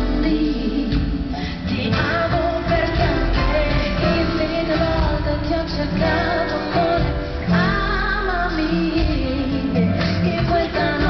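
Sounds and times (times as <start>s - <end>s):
band playing: 0.0s - 11.0s
cajon percussion: 0.0s - 11.0s
woman singing with vibrato: 0.0s - 11.0s.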